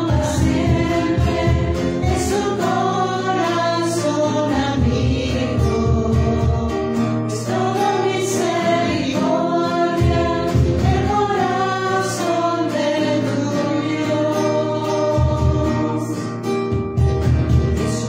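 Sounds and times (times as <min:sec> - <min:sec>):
choir singing a hymn: 0:00.0 - 0:16.5
instrumental accompaniment: 0:00.0 - 0:18.0.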